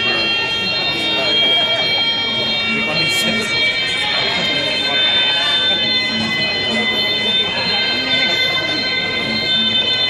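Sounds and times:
murmur of people talking: 0.0 - 10.0.

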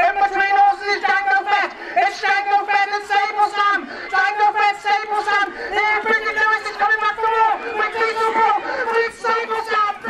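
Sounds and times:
crowd chatter: 0.0 - 10.0
man giving race commentary: 0.0 - 10.0.

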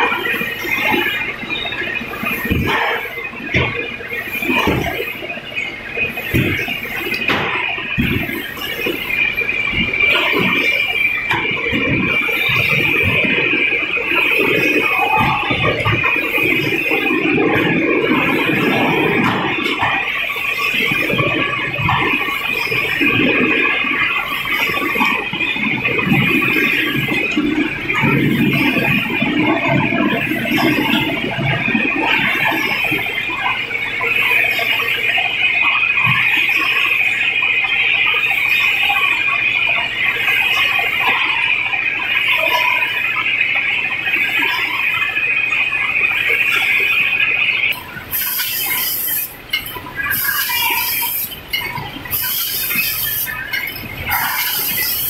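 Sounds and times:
high-pitched machine whine: 0.0 - 55.0.

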